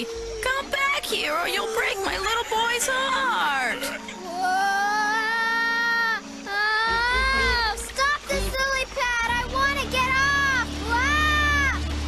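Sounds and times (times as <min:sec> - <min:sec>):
low musical drone tone: 0:03.6 - 0:12.0.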